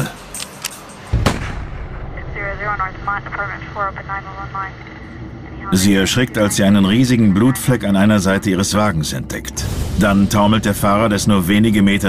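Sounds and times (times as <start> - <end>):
loud gunshot: 1.1 - 2.1.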